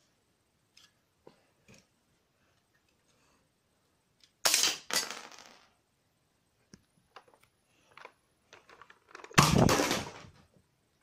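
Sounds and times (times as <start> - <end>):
plastic clattering cracks: 7.1 - 10.4.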